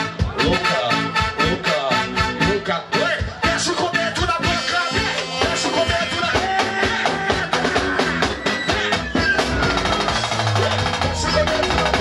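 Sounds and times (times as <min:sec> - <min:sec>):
fast percussion strokes: 0:04.9 - 0:12.0.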